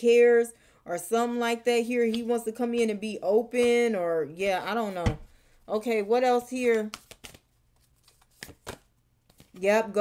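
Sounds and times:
cards flicking and snapping: 6.8 - 9.6.

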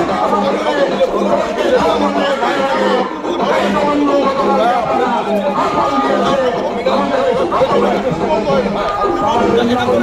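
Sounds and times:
men arguing: 0.0 - 10.0.

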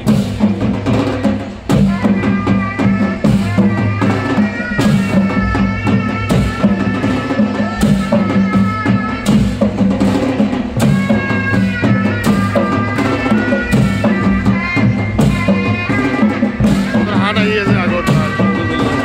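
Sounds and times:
barrel drums beating: 0.0 - 19.0
wind instrument melody: 0.0 - 19.0.

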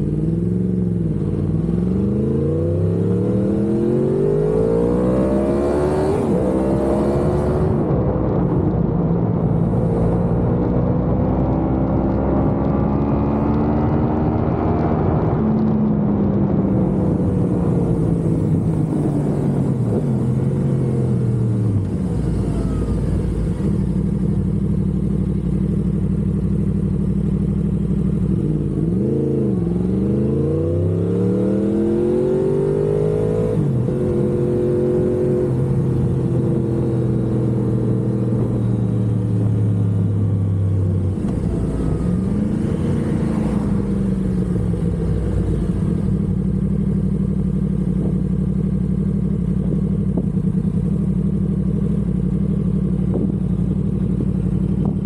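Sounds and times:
motorcycle engine running: 0.0 - 55.0.

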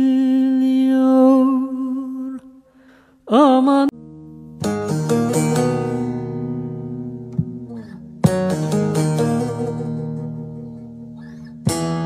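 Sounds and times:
person singing folk song: 0.0 - 10.4
plucked string notes: 3.9 - 12.0.

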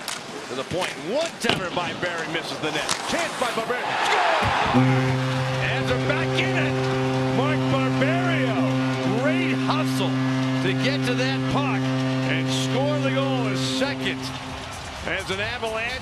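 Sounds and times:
crowd cheering: 3.2 - 16.0
goal horn low tone: 4.4 - 15.0.

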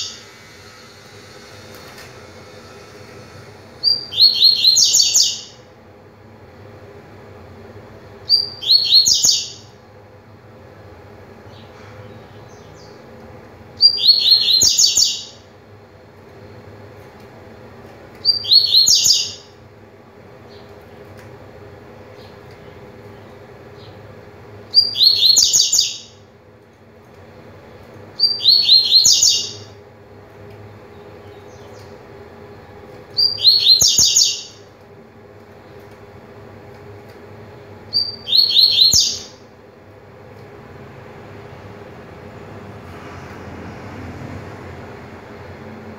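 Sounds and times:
bird singing high-pitched phrases: 3.8 - 5.6, 8.2 - 9.7, 13.8 - 15.4, 18.2 - 19.5, 24.7 - 26.2, 28.2 - 29.7, 33.2 - 34.6, 37.9 - 39.4.

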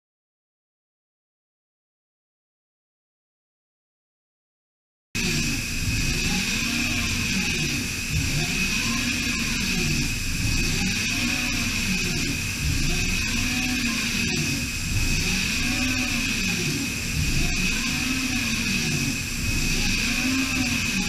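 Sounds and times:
coolant spray hiss: 5.2 - 21.0
high-pitched milling whine: 5.2 - 21.0
lower whine rising and falling: 5.2 - 21.0.

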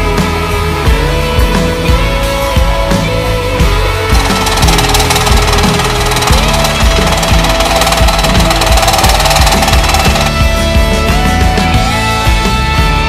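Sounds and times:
rock background music: 0.0 - 13.0
scroll saw cutting: 4.2 - 10.4.

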